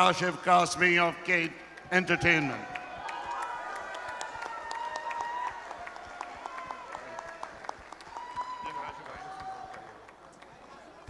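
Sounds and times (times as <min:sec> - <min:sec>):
hand claps: 0:01.4 - 0:08.5.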